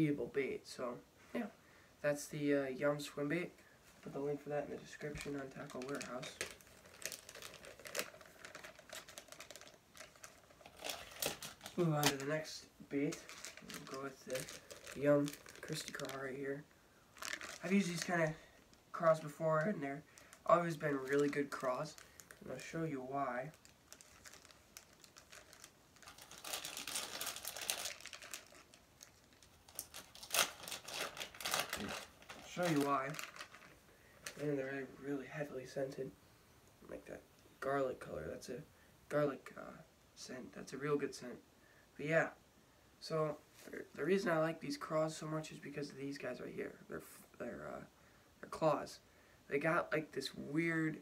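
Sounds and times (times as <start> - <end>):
plastic packaging crinkling: 4.8 - 34.5.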